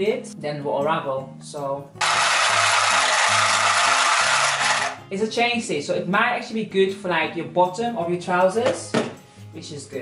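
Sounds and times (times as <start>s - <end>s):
sewing machine stitching: 2.0s - 5.0s.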